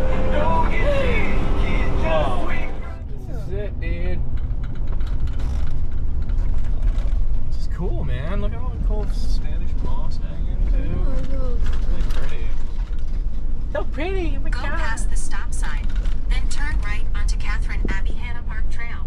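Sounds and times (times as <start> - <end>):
bus engine and road rumble: 0.0 - 19.0
cab fittings rattling and creaking: 4.2 - 7.5.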